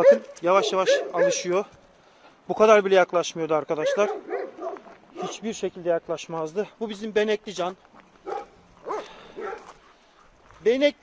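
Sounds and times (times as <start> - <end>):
dog yipping: 0.0 - 1.5, 3.8 - 5.4, 8.2 - 9.8.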